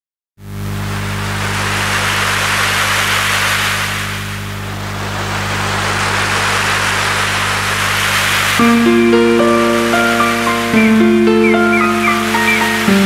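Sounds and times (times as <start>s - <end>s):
surf-like noise: 0.6s - 13.0s
low synth chord: 8.6s - 13.0s.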